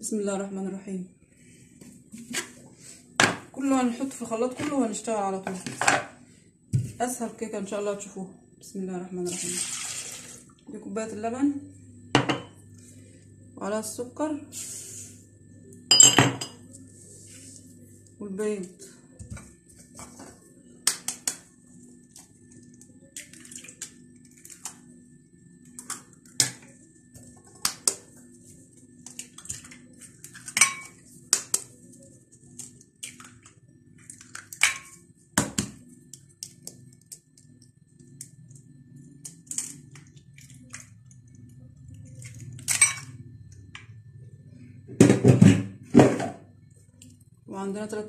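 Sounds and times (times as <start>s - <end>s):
steady low hum: 10.4s - 48.0s.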